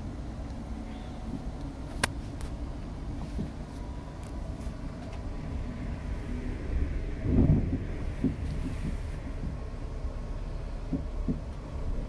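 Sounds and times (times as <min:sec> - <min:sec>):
train cabin rumble: 0:00.0 - 0:12.0.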